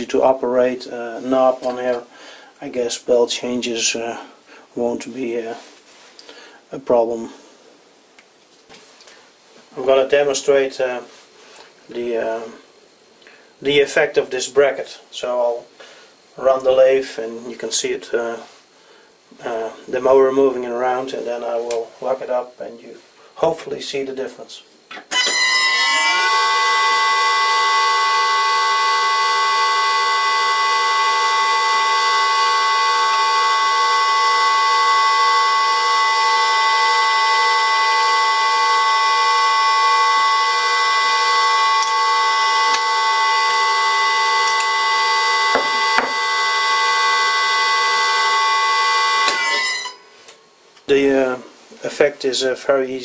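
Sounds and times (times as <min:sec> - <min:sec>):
electric motor whine: 0:25.1 - 0:50.1.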